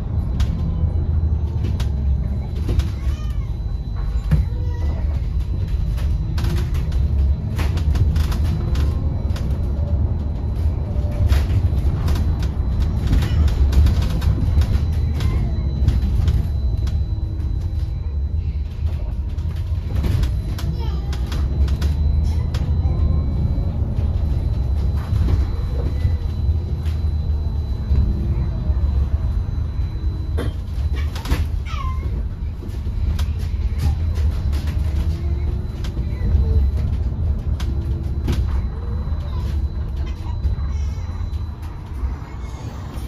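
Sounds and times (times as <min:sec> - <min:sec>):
bus road and drive rumble: 0:00.0 - 0:43.0
rattles and clicks: 0:00.1 - 0:28.2.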